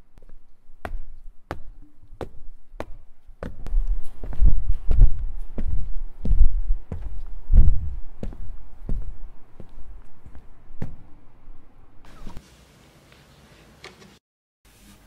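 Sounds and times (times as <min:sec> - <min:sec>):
boot footsteps on hard floor: 0:00.2 - 0:11.0
heavy low thuds: 0:00.8 - 0:12.0.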